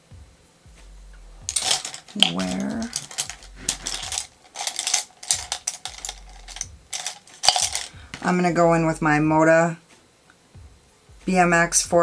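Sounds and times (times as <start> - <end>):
makeup items clicking and clattering: 1.5 - 8.3.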